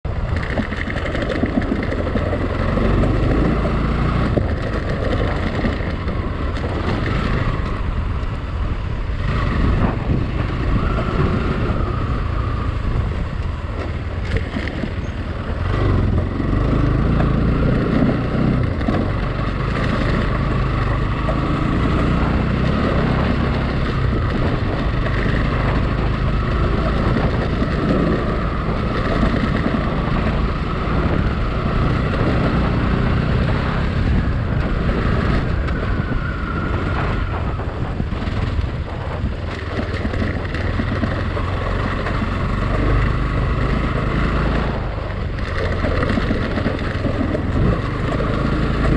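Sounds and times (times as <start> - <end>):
motorcycle engine running: 0.0 - 48.9
wind buffeting microphone: 0.0 - 48.9
knocks and rattles from bumps: 0.2 - 7.5.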